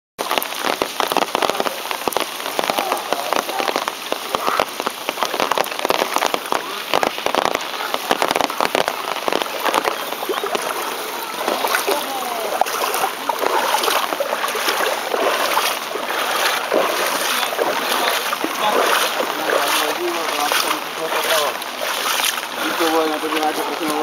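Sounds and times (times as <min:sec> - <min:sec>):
rain falling on water: 0:00.2 - 0:24.0.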